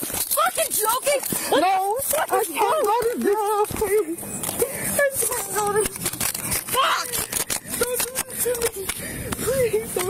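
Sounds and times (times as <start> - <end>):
woman screaming and wailing: 6.7 - 8.8.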